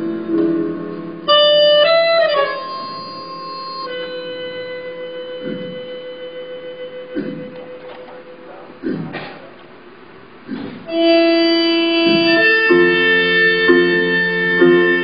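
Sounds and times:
live stage music: 0:00.0 - 0:09.3, 0:10.6 - 0:15.0
loud high sliding note: 0:10.9 - 0:15.0.

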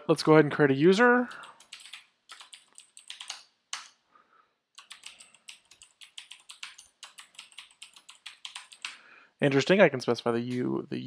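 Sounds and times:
typing on computer keyboard: 0:01.3 - 0:04.0, 0:04.8 - 0:09.0.

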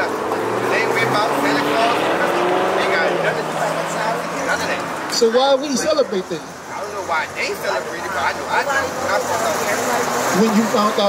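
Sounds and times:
car driving past: 0:00.0 - 0:07.1
faint voices: 0:00.0 - 0:11.0.

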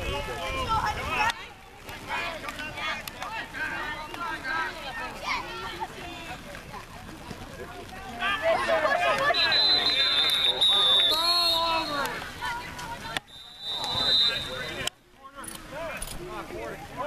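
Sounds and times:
spectators shouting: 0:07.9 - 0:14.9
referee's whistle blasts: 0:09.2 - 0:12.2, 0:13.3 - 0:14.9.

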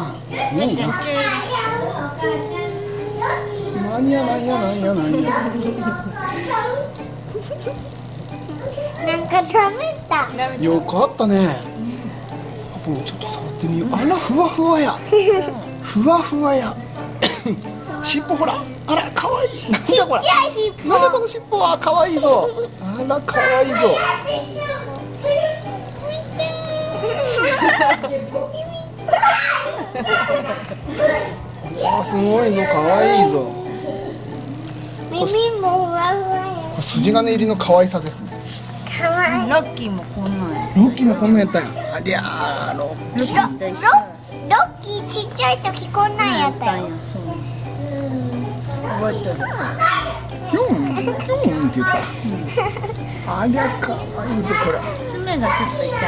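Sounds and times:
adults and child talking: 0:00.0 - 0:56.0
steady low hum: 0:00.0 - 0:56.0
young child vocalizing: 0:01.2 - 0:07.1, 0:32.9 - 0:36.8.

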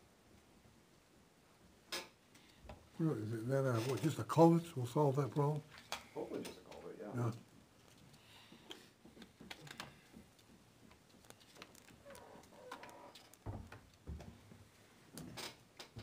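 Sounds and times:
paper rustling: 0:11.0 - 0:13.3.

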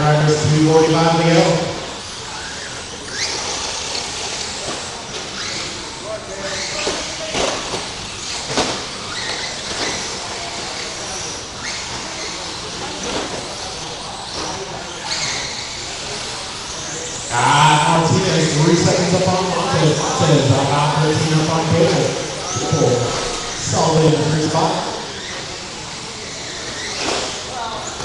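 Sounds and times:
rc trucks motor whine: 0:00.0 - 0:28.0.

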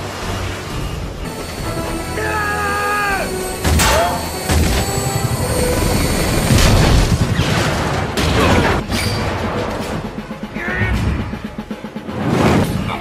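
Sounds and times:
orchestral battle music: 0:00.4 - 0:13.0
crashing impacts and explosions: 0:03.4 - 0:11.4.

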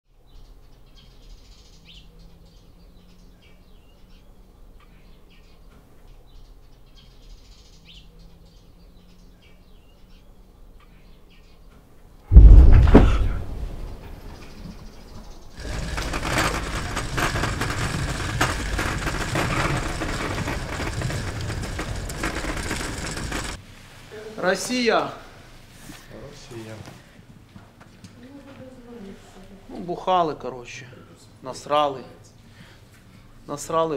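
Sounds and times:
metal gurney rattling on pavement: 0:15.6 - 0:23.6.

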